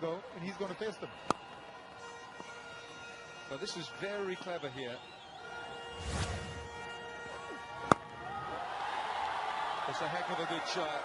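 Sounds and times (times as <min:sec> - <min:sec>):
cricket bat striking ball: 0:07.8 - 0:08.1.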